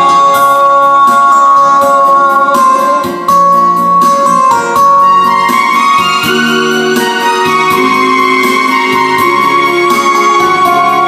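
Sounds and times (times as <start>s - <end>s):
instrumental karaoke backing track: 0.0s - 11.0s.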